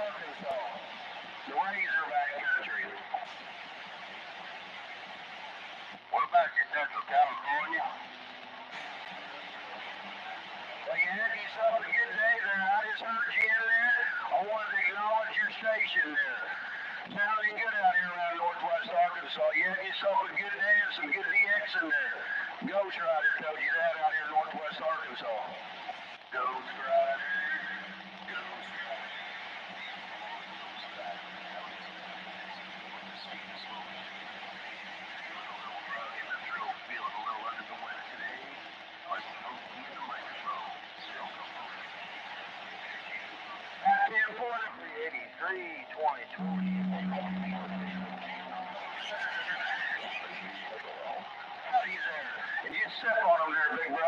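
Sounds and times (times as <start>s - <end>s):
distorted radio voices: 0.0s - 54.0s
radio hum with faint noise: 0.0s - 54.0s.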